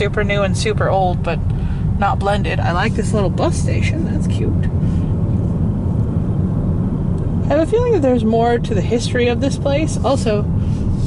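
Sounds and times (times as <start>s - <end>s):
car interior road and engine rumble: 0.0s - 11.0s.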